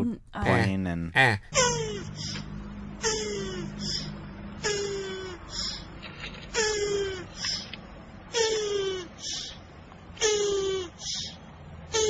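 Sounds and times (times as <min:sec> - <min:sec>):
tortoise moaning: 0:03.0 - 0:07.7.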